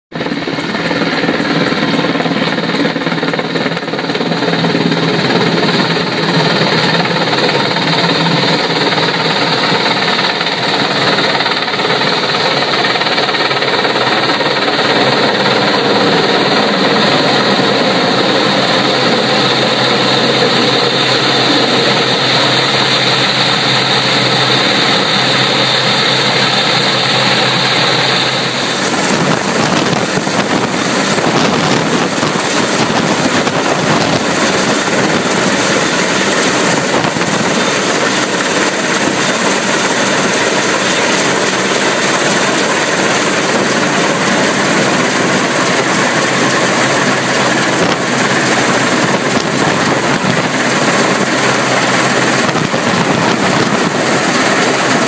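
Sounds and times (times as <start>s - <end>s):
helicopter rotor beat: 0.1s - 55.0s
high whine: 0.2s - 55.0s.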